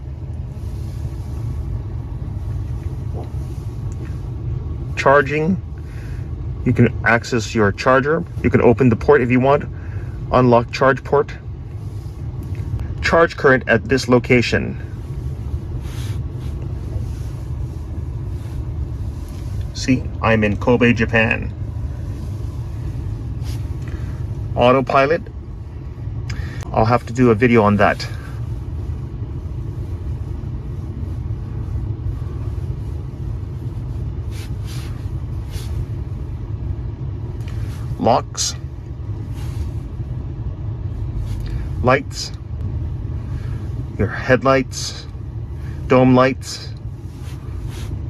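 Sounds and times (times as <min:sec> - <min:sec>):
car cabin low rumble: 0:00.0 - 0:48.0
soft rustle: 0:14.8 - 0:25.0, 0:25.6 - 0:38.0, 0:38.9 - 0:41.8, 0:46.8 - 0:48.0.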